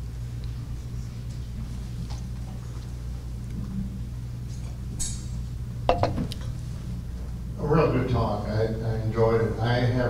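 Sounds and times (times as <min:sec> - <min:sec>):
low hum: 0:00.3 - 0:07.6.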